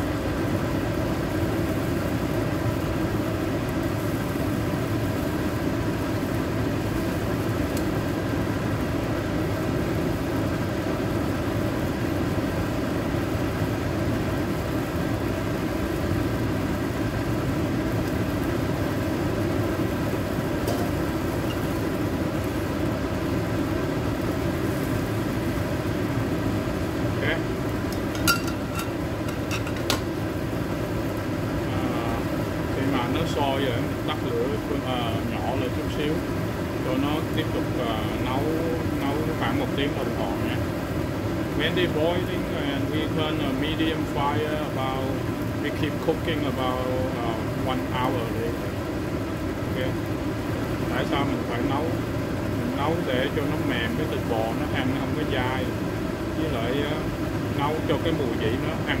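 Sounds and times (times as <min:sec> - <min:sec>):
gas stove burner rushing: 0:00.0 - 0:59.0.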